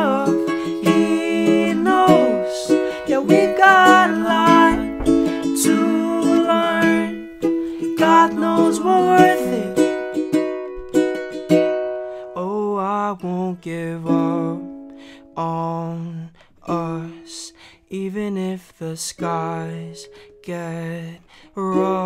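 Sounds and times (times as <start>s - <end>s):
man's wordless singing: 0.0s - 10.2s, 12.3s - 22.0s
ukulele strummed slowly: 0.0s - 17.4s, 19.1s - 22.0s
knock at door: 4.6s - 5.6s.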